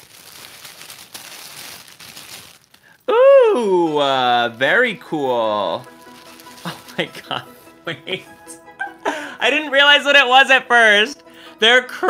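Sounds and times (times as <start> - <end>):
packaging crinkling and rustling: 0.0 - 3.0, 4.4 - 7.6.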